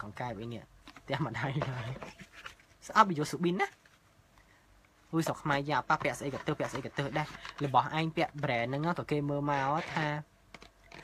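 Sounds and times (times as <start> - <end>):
man speaking: 0.0 - 2.2, 2.8 - 3.8, 5.1 - 10.3.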